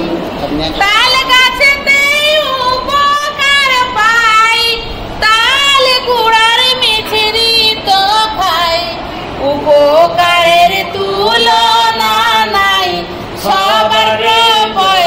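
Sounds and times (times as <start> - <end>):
woman singing unaccompanied: 0.8 - 15.0.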